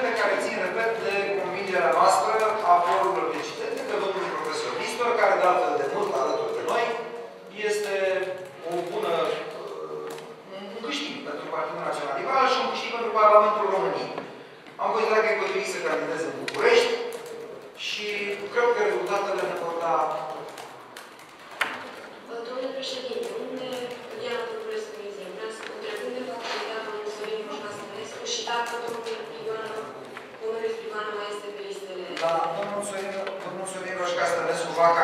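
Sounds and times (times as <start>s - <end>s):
man talking: 0.0s - 14.2s, 14.8s - 20.6s, 32.2s - 35.0s.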